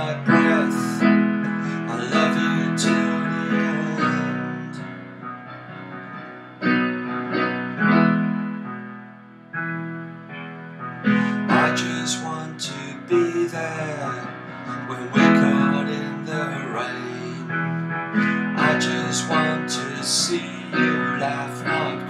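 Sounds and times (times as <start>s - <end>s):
digital piano chords: 0.0s - 22.0s.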